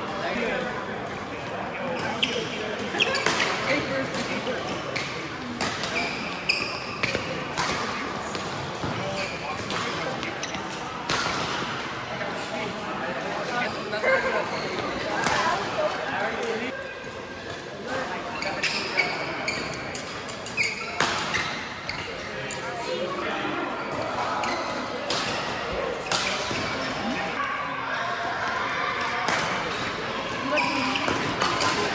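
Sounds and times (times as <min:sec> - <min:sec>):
shoe squeaks on court floor: 0:01.8 - 0:10.8, 0:13.6 - 0:15.6, 0:17.9 - 0:22.8, 0:23.8 - 0:25.0, 0:30.4 - 0:31.9
rackets hitting shuttlecock: 0:02.8 - 0:12.0, 0:20.0 - 0:21.6.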